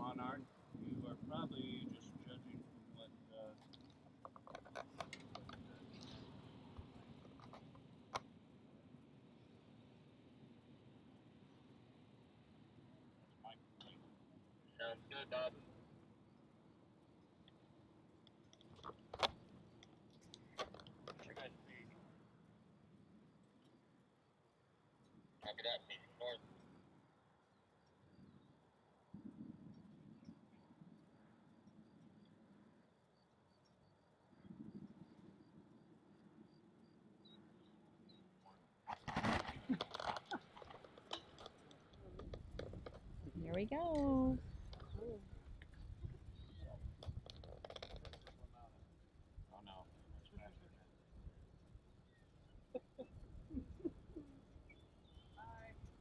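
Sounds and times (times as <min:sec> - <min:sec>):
faint low hum: 0:00.0 - 0:56.0.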